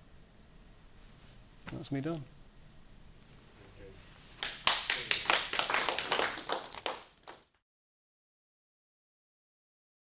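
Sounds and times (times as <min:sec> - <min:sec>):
audience clapping: 0:04.4 - 0:07.6.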